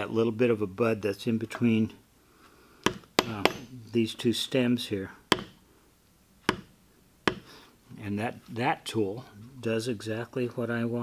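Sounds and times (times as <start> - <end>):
metal tool striking leather on stone: 2.8 - 3.7, 5.3 - 5.6, 6.4 - 7.5.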